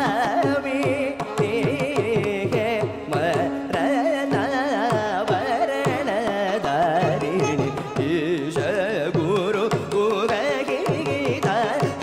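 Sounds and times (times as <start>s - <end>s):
man singing ornamented melody: 0.0s - 12.0s
violin: 0.0s - 12.0s.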